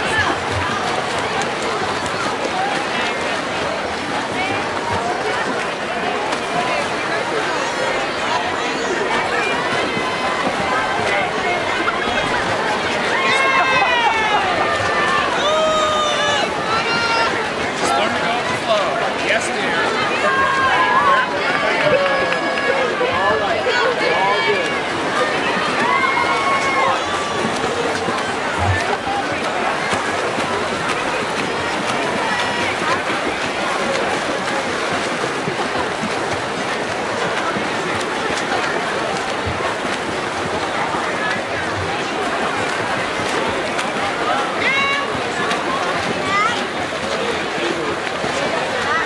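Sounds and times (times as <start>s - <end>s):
crowd cheering and shouting: 0.0s - 49.0s
swimmers splashing: 0.0s - 49.0s.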